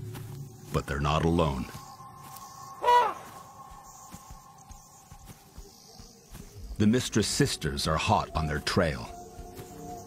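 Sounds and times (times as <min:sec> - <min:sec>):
soft music drone: 0:00.0 - 0:10.0.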